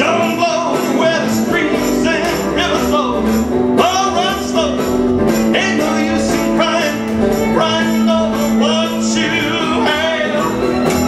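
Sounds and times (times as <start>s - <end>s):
strummed acoustic guitar: 0.0s - 11.0s
upright bass: 0.0s - 11.0s.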